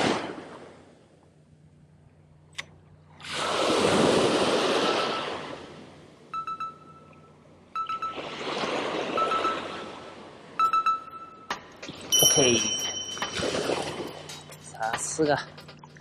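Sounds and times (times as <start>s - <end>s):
surf breaking on sand: 3.2s - 5.7s
fishing reel whining: 12.1s - 14.8s.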